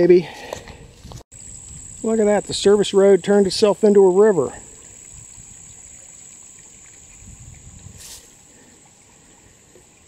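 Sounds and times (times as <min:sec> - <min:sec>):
insect drone: 0:01.3 - 0:10.0
water trickling: 0:01.4 - 0:10.0.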